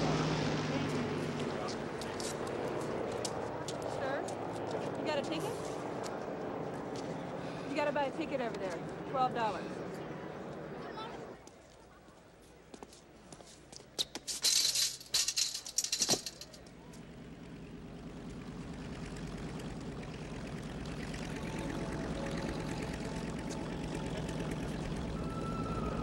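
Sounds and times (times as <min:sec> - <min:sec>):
chain-link fence rattling: 0:13.9 - 0:16.8
film score music: 0:21.2 - 0:26.0.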